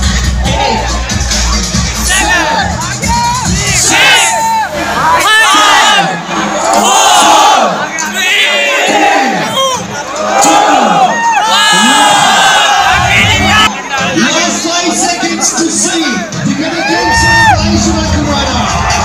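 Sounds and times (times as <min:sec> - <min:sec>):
music with thumping bass: 0:00.0 - 0:05.1, 0:12.7 - 0:15.4, 0:16.2 - 0:19.0
crowd shouting and cheering: 0:00.0 - 0:19.0.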